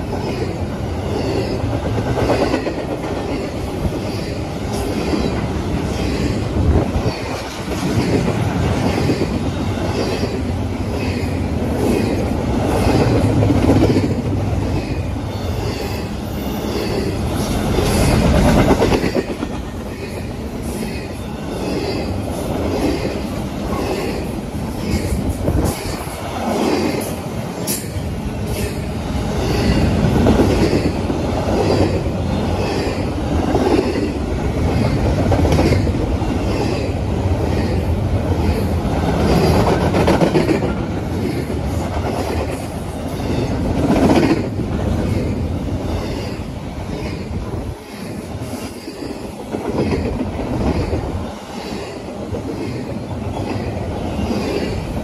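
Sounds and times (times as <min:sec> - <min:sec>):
steel wheels rumbling on rail: 0:00.0 - 0:55.0
wheels clickety-clack on rail joints: 0:00.0 - 0:55.0.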